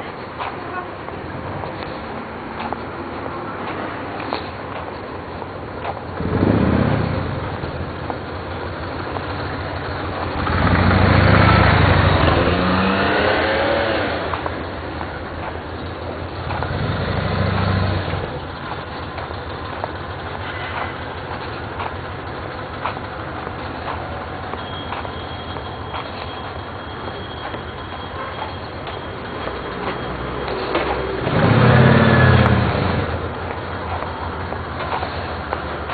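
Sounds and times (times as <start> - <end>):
street noise: 0.0 - 35.9
vehicles passing: 0.0 - 35.9.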